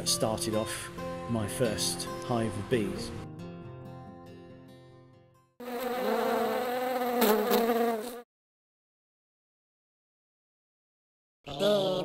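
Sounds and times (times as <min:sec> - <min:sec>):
guitar notes: 0:00.0 - 0:05.4
bee buzzing: 0:05.6 - 0:08.3.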